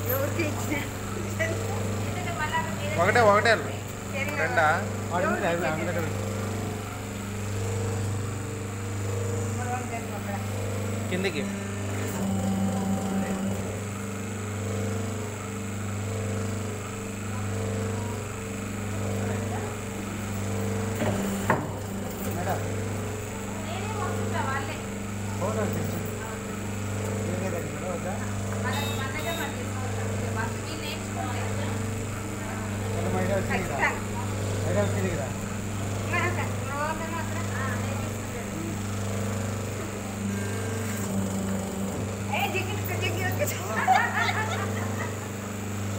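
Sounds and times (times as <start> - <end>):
electric motor humming: 0.0 - 45.9.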